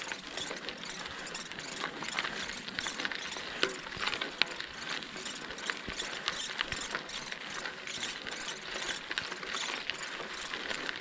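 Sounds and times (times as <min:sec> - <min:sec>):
bicycle freewheel ticking: 0:00.0 - 0:11.0
tyres crunching on gravel: 0:00.0 - 0:11.0.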